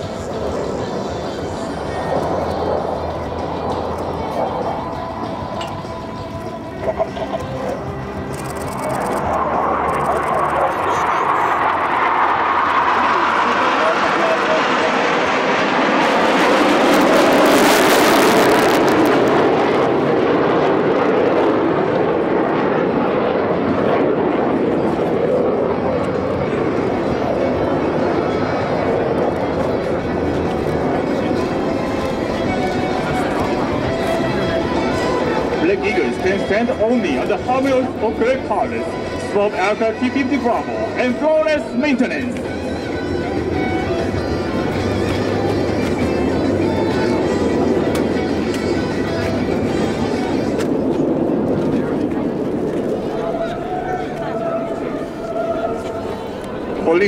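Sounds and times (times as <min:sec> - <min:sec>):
jets passing overhead: 0:00.0 - 0:57.0.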